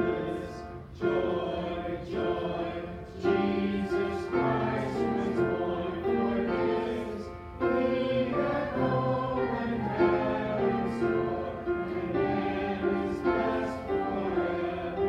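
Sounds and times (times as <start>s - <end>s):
voices singing: 0.0s - 15.0s.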